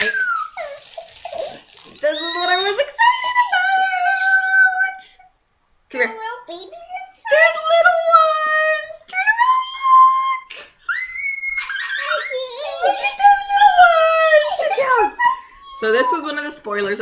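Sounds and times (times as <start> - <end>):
people talking: 0.0 - 0.9, 1.8 - 5.2, 5.9 - 10.6, 11.6 - 17.0
young children squealing: 0.0 - 4.8, 9.8 - 16.4.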